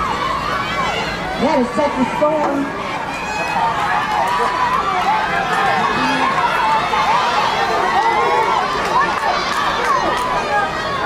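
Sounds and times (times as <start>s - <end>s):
spectators shouting: 0.0s - 11.0s.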